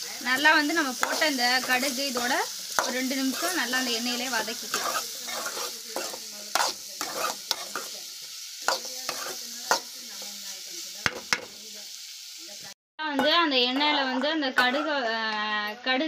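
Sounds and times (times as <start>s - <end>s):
carrots sizzling in oil: 0.0s - 15.7s
ladle scraping metal pan: 4.6s - 8.0s, 8.7s - 9.9s.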